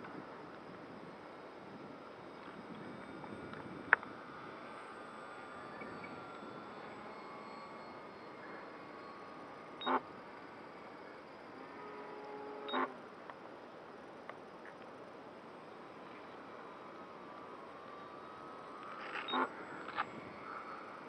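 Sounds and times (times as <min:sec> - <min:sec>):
background hiss: 0:00.0 - 0:21.0
distant model airplane motor drone: 0:00.0 - 0:21.0.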